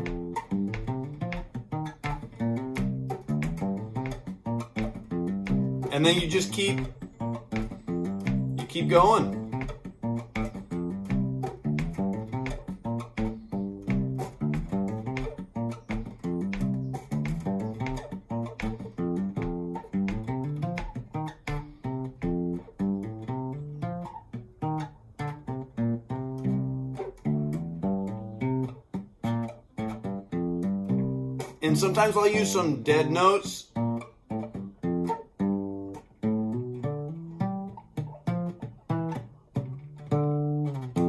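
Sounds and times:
plucked acoustic bass guitar: 0:00.0 - 0:41.0.

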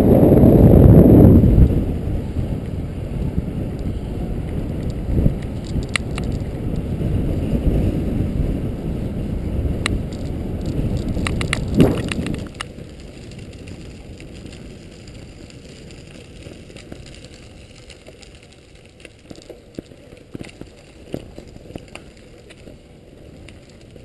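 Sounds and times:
bicycle tyres crunching gravel: 0:00.0 - 0:24.0
wind buffeting microphone: 0:00.0 - 0:24.0
small clicks: 0:04.8 - 0:06.9, 0:09.8 - 0:22.8.

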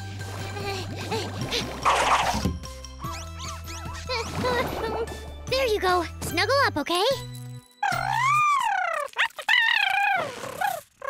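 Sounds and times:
cartoon creature squeaks: 0:03.0 - 0:04.2, 0:07.8 - 0:11.0
high-pitched wavering coo: 0:07.8 - 0:10.8.

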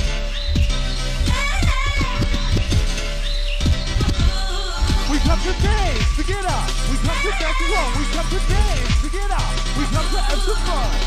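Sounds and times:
fast kick-drum beat: 0:00.0 - 0:03.0, 0:03.6 - 0:11.0.

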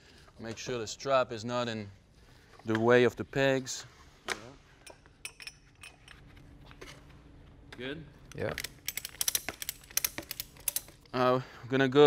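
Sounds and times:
ratchet strap metal clicks: 0:08.3 - 0:11.0.

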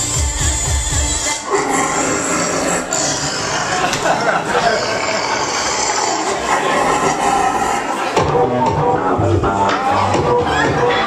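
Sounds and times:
club music: 0:00.0 - 0:01.9, 0:07.8 - 0:11.0
crowd noise: 0:00.0 - 0:11.0.

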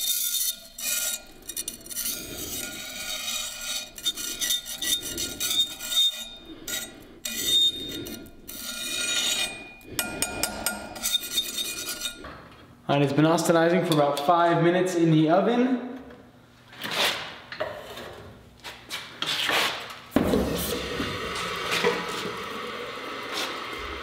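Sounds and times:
ringing steel tone: 0:00.0 - 0:12.2
file scraping steel blade: 0:00.0 - 0:12.3.

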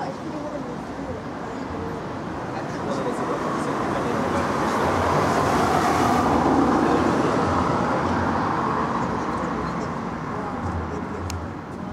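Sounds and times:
vehicle passing: 0:01.9 - 0:11.9.

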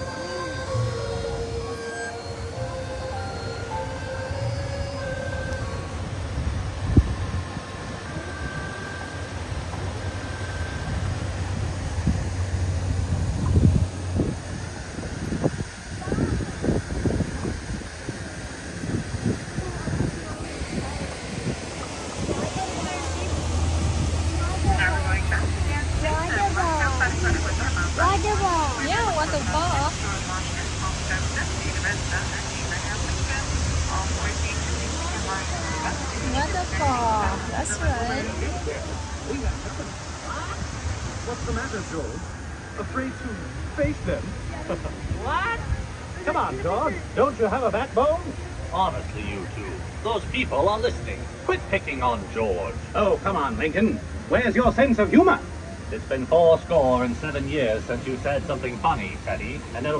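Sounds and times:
held music notes: 0:00.0 - 0:15.0
boat motor humming: 0:00.0 - 0:59.9
low rushing noise: 0:00.0 - 0:59.9
water and wind noise: 0:00.0 - 0:59.9
wind thumping on microphone: 0:11.5 - 0:26.5.

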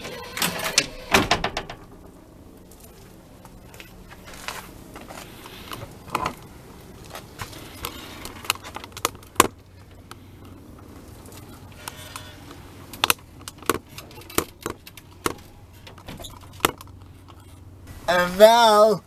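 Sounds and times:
low steady hum: 0:00.0 - 0:19.0
wheelchair clicks and knocks: 0:11.2 - 0:17.5.

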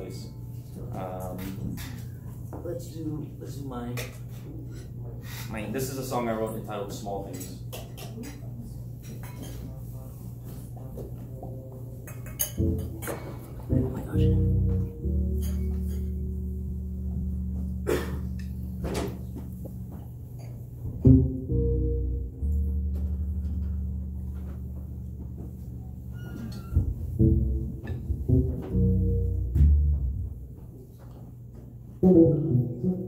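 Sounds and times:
electric bass playing jazz: 0:11.2 - 0:31.0, 0:31.8 - 0:33.0.

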